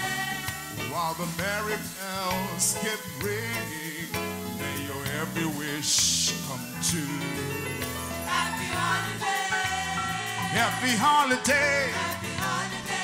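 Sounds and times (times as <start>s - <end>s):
gliding melodic lead line: 0.8s - 13.0s.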